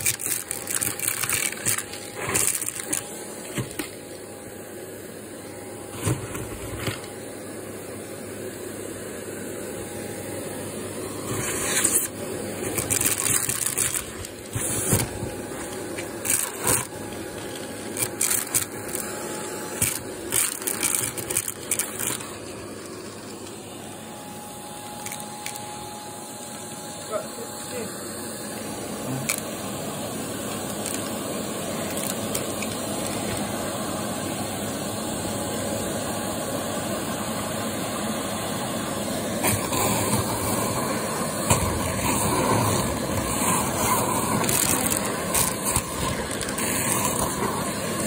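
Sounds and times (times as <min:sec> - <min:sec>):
vacuum cleaner running with whine: 0:00.0 - 0:48.0.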